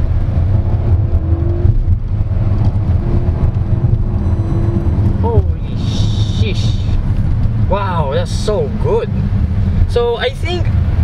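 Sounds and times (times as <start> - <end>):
car engine under load: 0.0 - 11.0
steady low rumble: 0.0 - 11.0.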